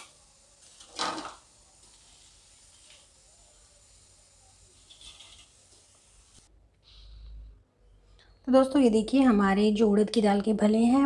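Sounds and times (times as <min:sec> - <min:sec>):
frying in hot oil sizzle: 0:00.0 - 0:06.5.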